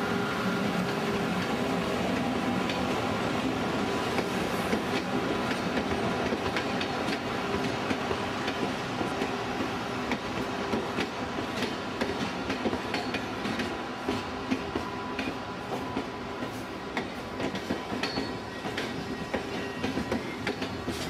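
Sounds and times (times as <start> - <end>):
train wheels rumbling on rail: 0.0 - 21.0
clickety-clack over rail joints: 0.8 - 2.9, 4.1 - 21.0.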